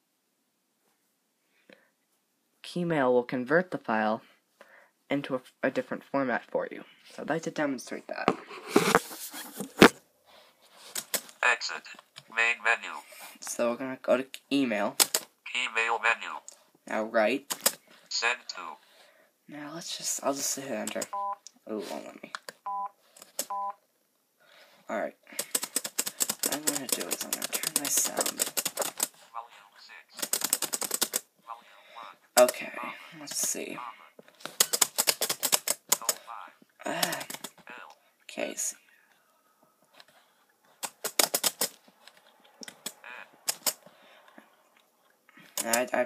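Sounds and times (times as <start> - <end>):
person speaking: 11.0 - 18.9, 19.5 - 22.5, 24.9 - 40.0, 42.6 - 43.8, 45.4 - 46.0
keyboard keys clicking: 17.5 - 17.8, 25.4 - 29.1, 30.2 - 31.2, 34.5 - 36.2, 40.8 - 41.8, 42.6 - 43.8
key clicks: 42.6 - 43.8.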